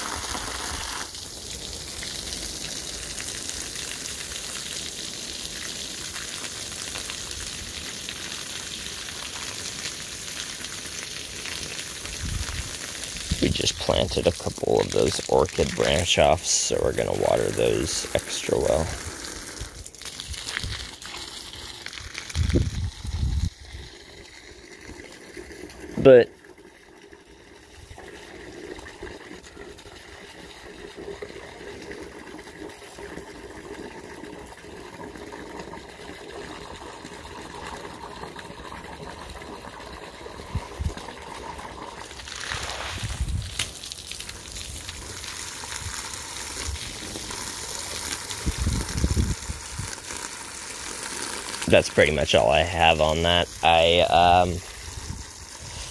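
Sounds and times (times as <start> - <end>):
garden hose spraying water: 0.0 - 55.9.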